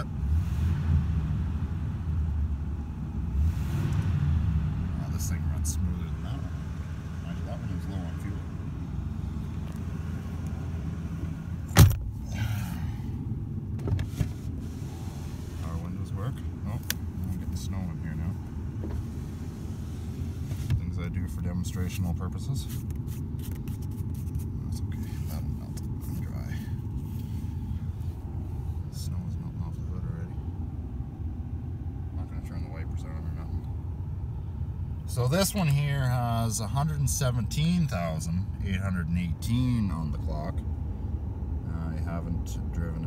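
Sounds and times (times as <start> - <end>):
car engine idling: 0.0 - 43.0
car door clunk: 11.7 - 12.2, 13.7 - 14.4.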